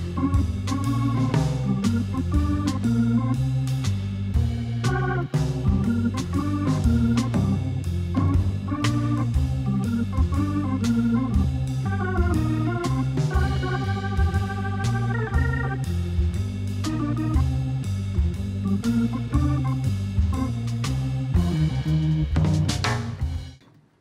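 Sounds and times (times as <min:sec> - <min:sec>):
background music with steady beat: 0:00.0 - 0:23.7.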